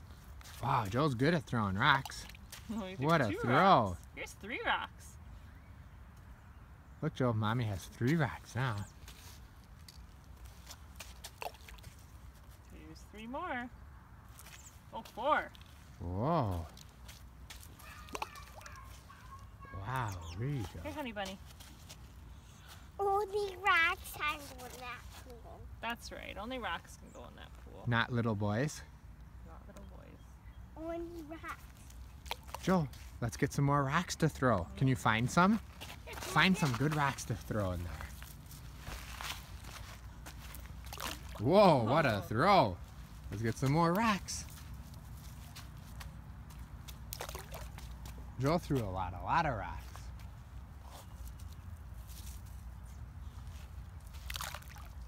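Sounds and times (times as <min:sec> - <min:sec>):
rock splashing into water: 0:47.1 - 0:47.9, 0:54.2 - 0:55.0.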